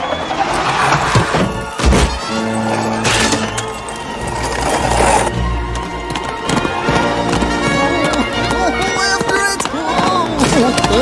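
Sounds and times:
film score music: 0.0s - 11.0s
horse hooves clip-clopping: 3.5s - 11.0s.

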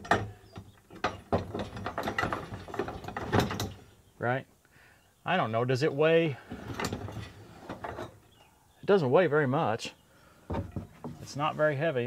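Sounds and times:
canopy brackets knocking and rattling: 0.0s - 4.0s, 6.5s - 8.4s, 10.4s - 11.3s.

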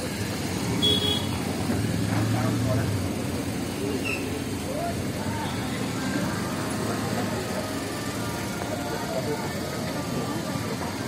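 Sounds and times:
indistinct crowd voices: 0.0s - 11.0s.

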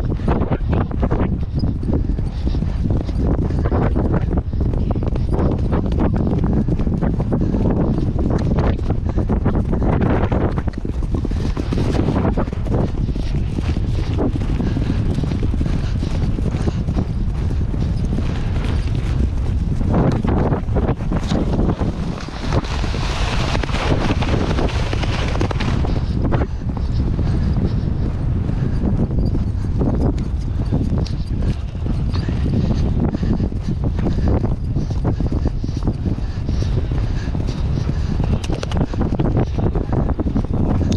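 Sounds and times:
pony hoofbeats galloping on turf: 0.0s - 40.9s
wind noise on microphone: 0.0s - 40.9s.

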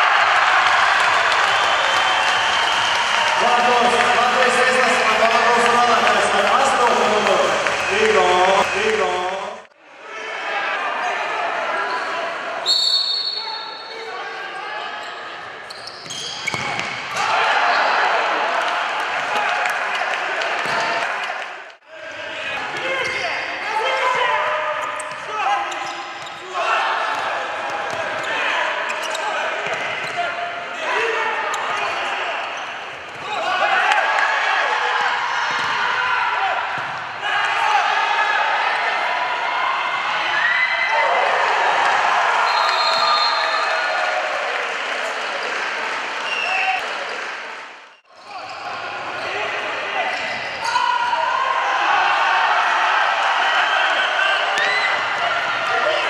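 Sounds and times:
shouting voices echoing: 3.2s - 15.3s, 17.1s - 32.6s
referee's whistle: 12.6s - 14.0s, 42.4s - 43.8s
ball bouncing on hard court: 36.8s - 37.0s.

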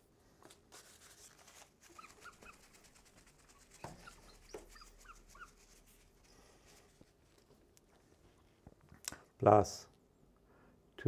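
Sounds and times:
marker squeaking on glass: 1.9s - 5.9s.

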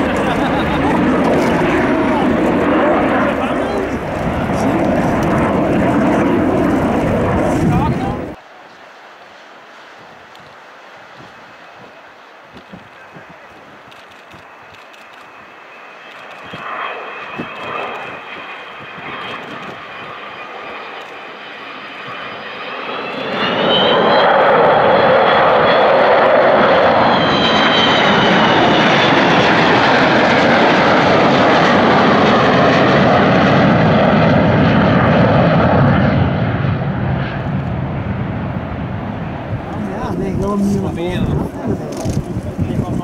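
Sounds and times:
high whining jet tones: 0.0s - 43.0s
jet aircraft flypast: 0.0s - 43.0s.

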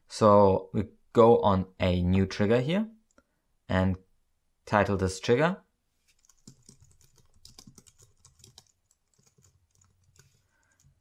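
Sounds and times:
typing on computer keyboard: 6.2s - 11.0s.

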